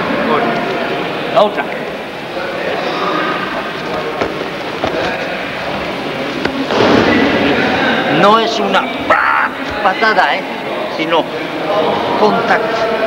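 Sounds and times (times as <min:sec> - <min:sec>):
background chatter: 0:00.0 - 0:13.0
body rustling onto a mat: 0:03.5 - 0:07.4.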